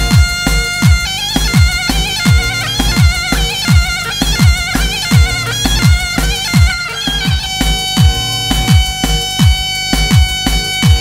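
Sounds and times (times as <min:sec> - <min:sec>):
deep booming drum beat: 0:00.0 - 0:11.0
reedy shawm dance tune: 0:00.0 - 0:11.0.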